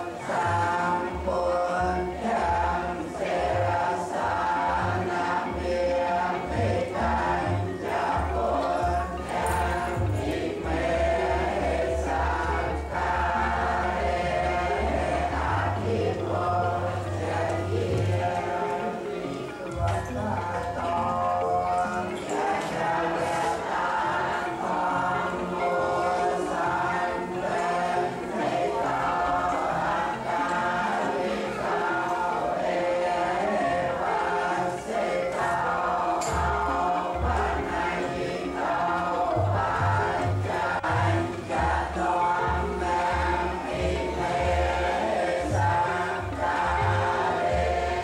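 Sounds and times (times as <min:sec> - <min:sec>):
many voices chanting in unison: 0:00.0 - 0:48.0.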